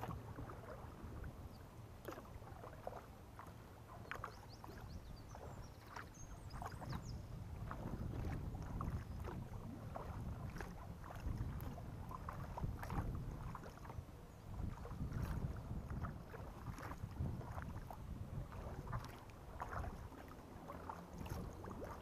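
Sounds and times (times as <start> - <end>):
wind rumble on microphone: 0.0 - 3.1, 3.9 - 22.0
paddle splashing in water: 0.0 - 22.0.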